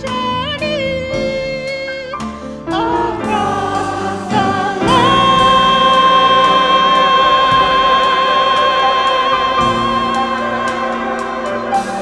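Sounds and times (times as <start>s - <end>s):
choir singing: 2.7s - 12.0s
long high sung note: 4.8s - 12.0s.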